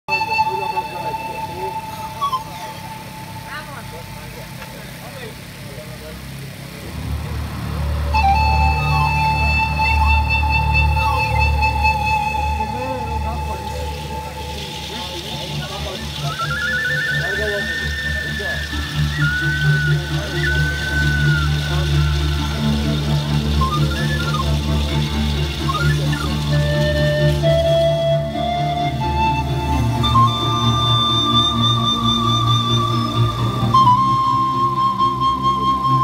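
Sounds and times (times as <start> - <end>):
wavering flute line: 0.0 - 5.5, 6.8 - 36.0
pan flute held notes: 0.1 - 5.1, 6.9 - 36.0
deep bass pulse: 6.8 - 16.2.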